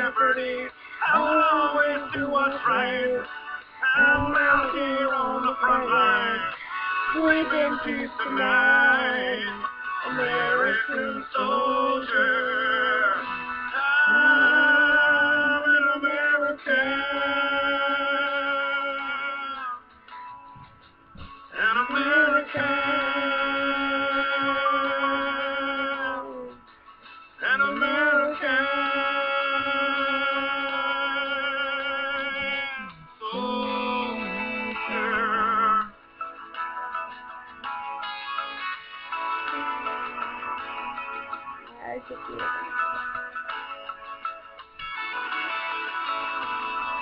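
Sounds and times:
girl singing with vibrato: 0:04.0 - 0:13.4, 0:14.0 - 0:18.6, 0:39.5 - 0:41.0.

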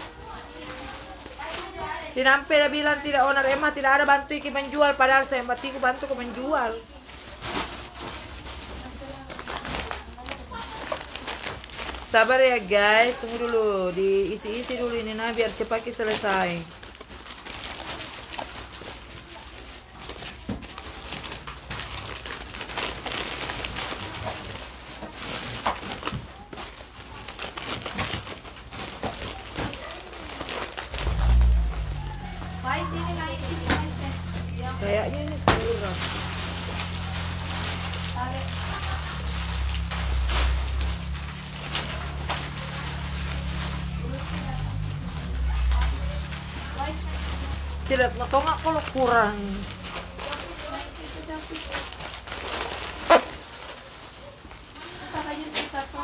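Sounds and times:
plastic bags rustling: 0:00.0 - 0:56.0
faint voices: 0:17.7 - 0:56.0.

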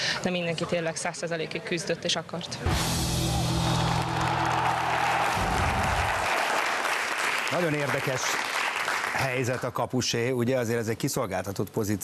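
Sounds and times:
audience applause: 0:03.2 - 0:09.7.

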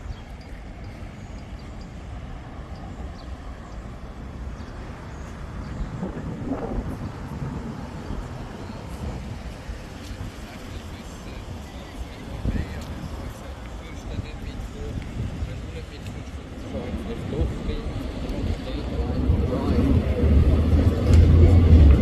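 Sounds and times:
city road traffic rumble: 0:00.0 - 0:22.0.

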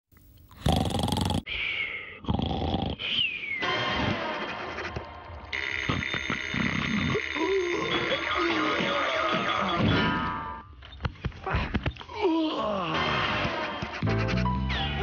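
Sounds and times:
cartoon growl-like vocal noises: 0:06.7 - 0:08.9.

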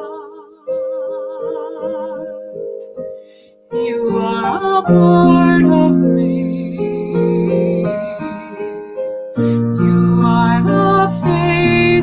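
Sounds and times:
woman singing with vibrato: 0:00.0 - 0:02.8, 0:03.7 - 0:09.0, 0:09.8 - 0:12.0.

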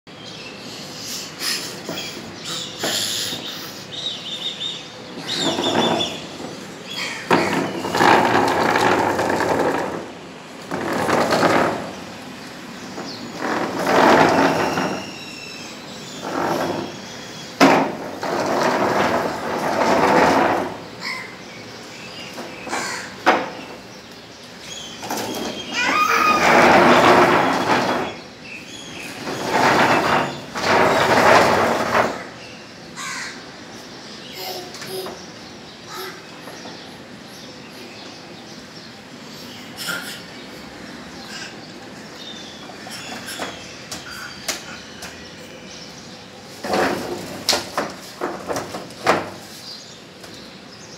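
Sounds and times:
plastic chair scraping concrete: 0:05.1 - 0:21.2, 0:24.7 - 0:32.4, 0:46.5 - 0:50.5
walker wheels rolling: 0:05.1 - 0:21.2, 0:21.8 - 0:32.5, 0:42.0 - 0:50.5.

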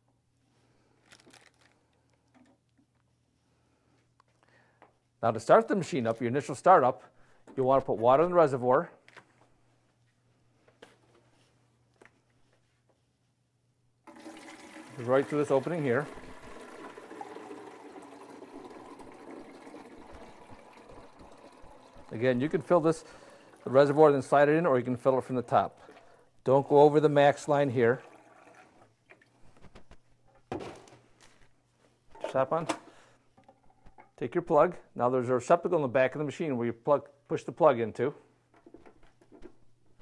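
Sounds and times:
water pouring from plastic jug: 0:14.1 - 0:29.3.

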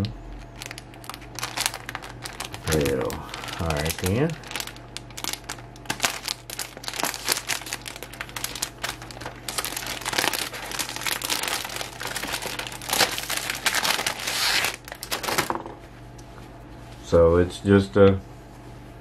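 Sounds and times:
plastic packaging crinkling: 0:00.3 - 0:15.6.

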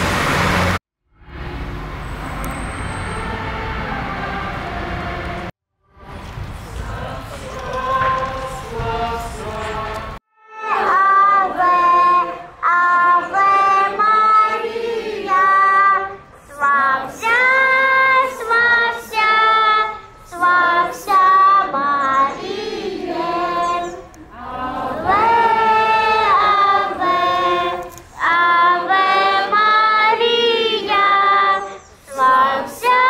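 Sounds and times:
passing car rumble: 0:00.0 - 0:10.2
choir of high voices singing: 0:03.1 - 0:33.0
group of voices singing: 0:03.3 - 0:33.0.

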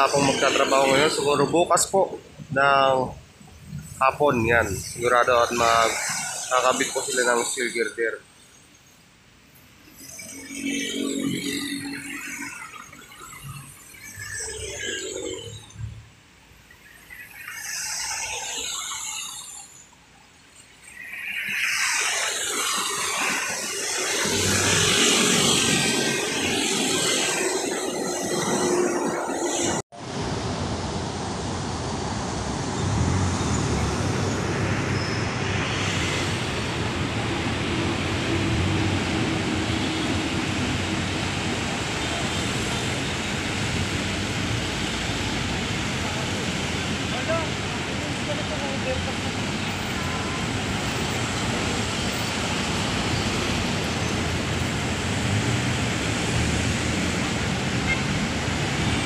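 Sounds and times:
heavy traffic noise: 0:00.0 - 0:59.0
vehicles passing close by: 0:09.8 - 0:19.8, 0:20.6 - 0:59.0.

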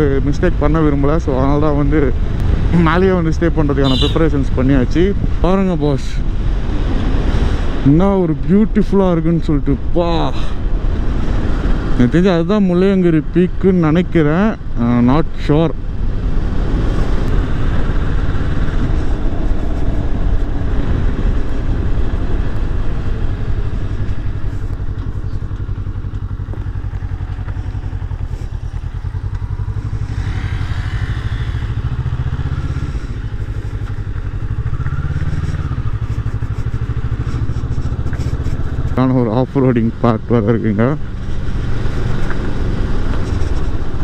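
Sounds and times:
motorcycle engine running: 0:00.0 - 0:04.4, 0:15.8 - 0:44.0.

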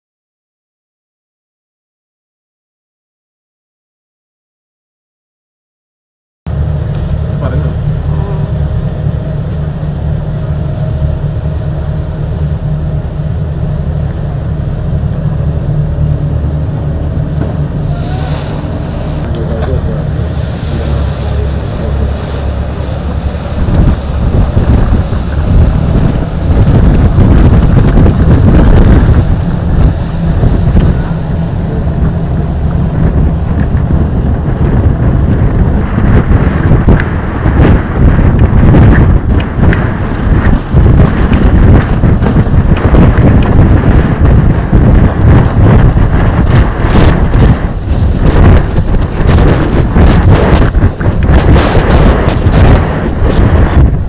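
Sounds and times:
ferry engines droning: 0:06.5 - 0:37.4
wind buffeting microphone: 0:06.5 - 0:54.0.

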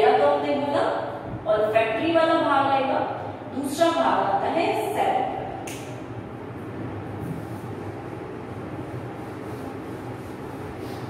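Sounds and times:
steady low rumble: 0:00.0 - 0:11.0
duster rubbing on whiteboard: 0:08.7 - 0:11.0.

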